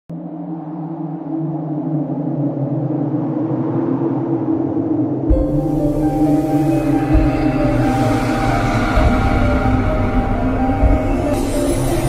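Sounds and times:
low synthesized drone: 0.1s - 12.0s.

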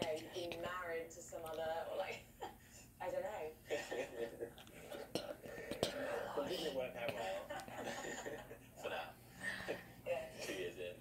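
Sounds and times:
person whispering: 4.9s - 6.8s.

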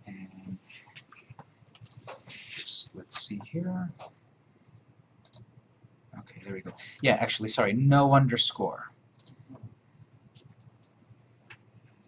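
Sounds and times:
faint computer mouse clicks: 4.6s - 5.5s, 9.2s - 9.4s, 10.4s - 11.7s.

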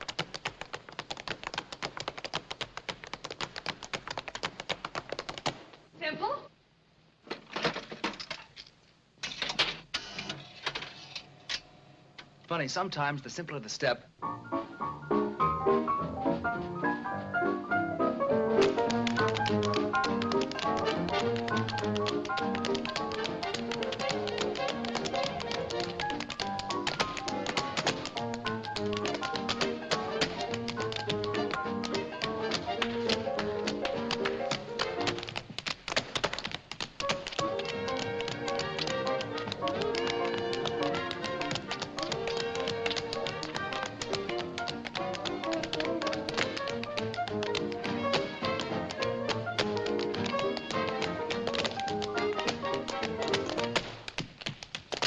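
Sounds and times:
jazzy dance-band music: 0.0s - 5.7s, 13.7s - 55.0s
tap shoes tapping: 0.0s - 5.8s, 18.6s - 55.0s.

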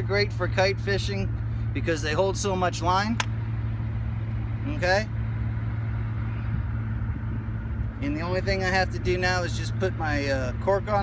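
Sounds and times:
rumbling background: 0.0s - 11.0s
steady low hum: 0.0s - 11.0s.

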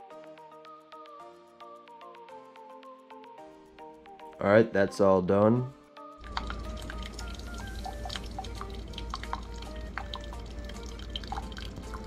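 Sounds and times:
coffee maker humming: 6.2s - 12.0s
coffee pouring and dripping into mug: 6.2s - 12.0s.

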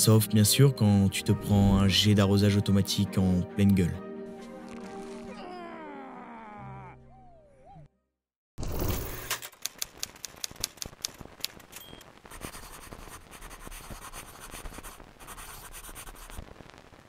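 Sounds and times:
sharp clicks and crackle: 9.2s - 13.0s
crackling hiss: 9.5s - 17.0s.

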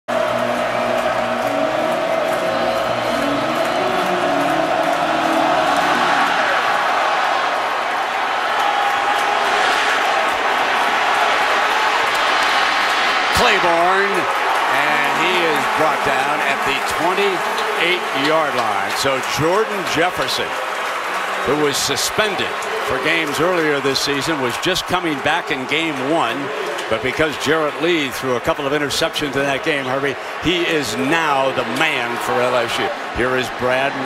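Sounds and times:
stadium crowd cheering: 0.1s - 34.0s
man's voice: 13.3s - 20.5s, 21.5s - 34.0s.

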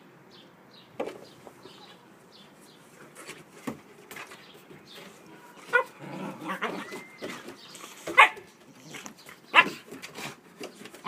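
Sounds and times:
dogs scuffling: 1.2s - 11.0s.

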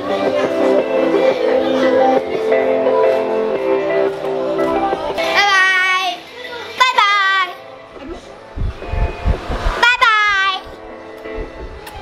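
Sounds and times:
music: 0.0s - 12.0s
low thumps: 8.4s - 9.9s.

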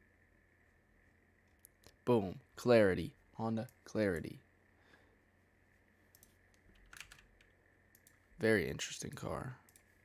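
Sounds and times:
computer mouse clicks: 6.1s - 8.2s, 9.6s - 10.0s.

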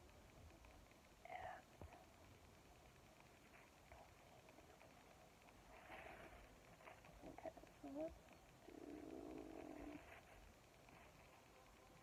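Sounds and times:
soft whispered vocal sound: 0.0s - 12.0s.

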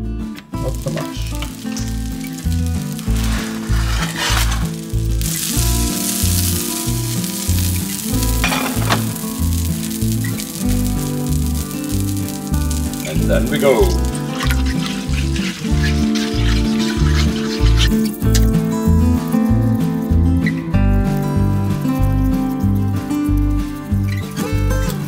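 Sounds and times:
music with steady bass beat: 0.0s - 25.0s
fat sizzling in frying pan: 0.2s - 25.0s.

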